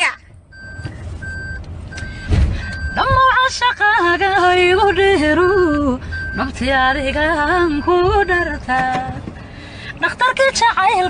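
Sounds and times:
low background rumble: 0.0s - 11.0s
electronic beeps: 0.5s - 4.0s, 4.9s - 6.6s.

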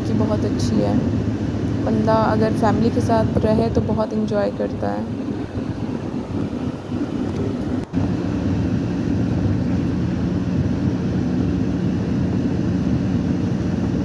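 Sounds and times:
vehicle engine and road noise: 0.0s - 14.0s.

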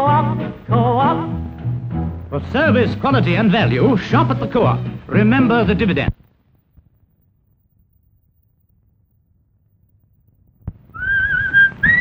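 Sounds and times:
person whistling a tune: 11.0s - 12.0s.

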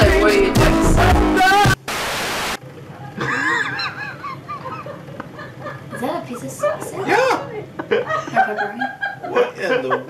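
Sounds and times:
static hiss: 0.0s - 2.6s.

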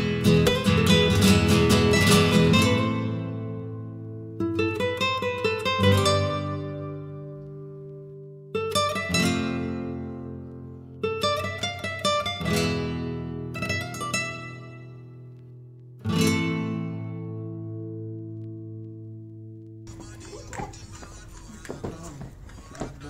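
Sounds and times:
strummed guitar chords: 0.0s - 19.8s.

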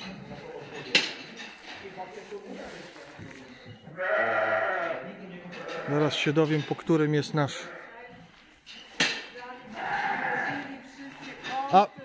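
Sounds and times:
ram bleating: 3.9s - 6.3s, 7.4s - 8.1s, 9.6s - 10.8s.

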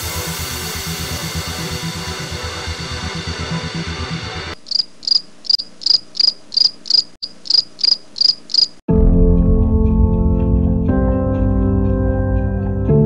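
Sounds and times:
cricket chirping: 4.6s - 8.8s.

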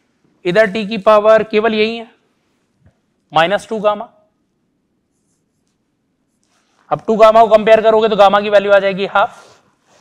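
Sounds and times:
man speaking: 0.4s - 2.2s, 3.3s - 4.3s, 6.9s - 9.4s.

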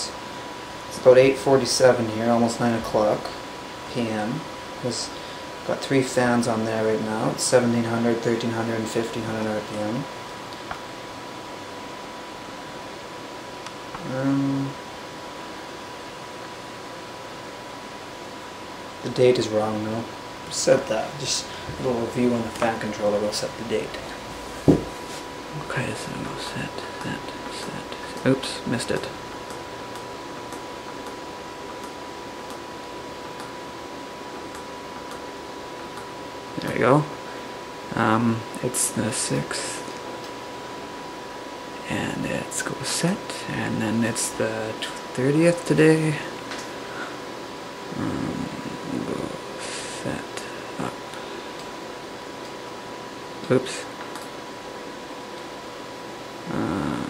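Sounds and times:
computer case fans running: 0.0s - 57.0s
thin steady whine: 0.0s - 57.0s
low vocal sound: 47.9s - 51.0s, 56.4s - 57.0s.

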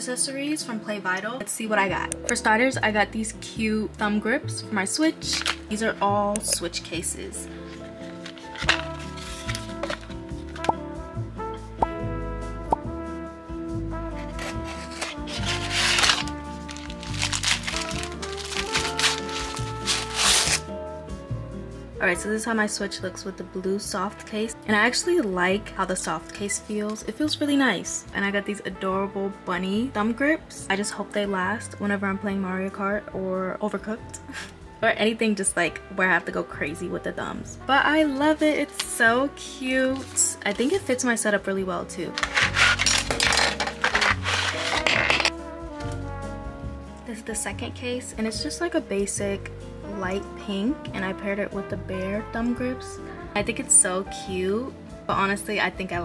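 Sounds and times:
background music: 0.0s - 56.0s
plastic packaging crinkling: 5.2s - 5.8s, 7.7s - 10.7s, 14.3s - 20.6s, 39.9s - 40.9s, 42.1s - 45.3s
cardboard box pulled apart: 5.3s - 5.6s, 7.7s - 10.7s, 14.3s - 20.7s, 39.9s - 40.8s, 42.2s - 45.4s
plastic tray scraping and rattling: 7.8s - 10.7s, 14.4s - 20.6s, 42.1s - 45.3s.

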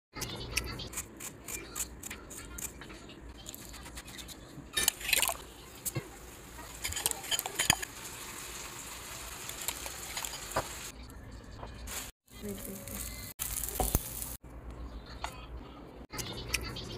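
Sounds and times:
metal spoon clinking glass bowl: 6.8s - 7.9s.

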